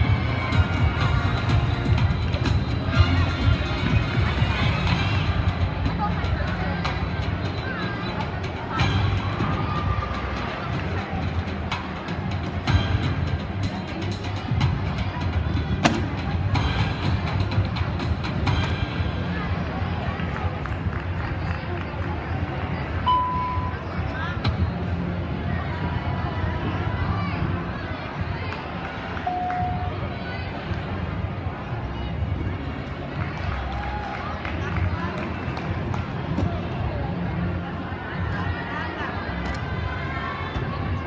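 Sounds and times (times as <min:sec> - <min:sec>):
background music: 0:00.0 - 0:41.0
indistinct crowd voices: 0:00.0 - 0:41.0
low rumble of busy hall: 0:00.0 - 0:41.0.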